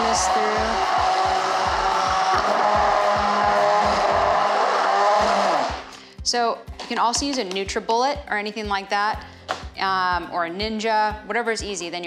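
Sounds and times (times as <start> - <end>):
immersion blender motor running: 0.0 - 5.9.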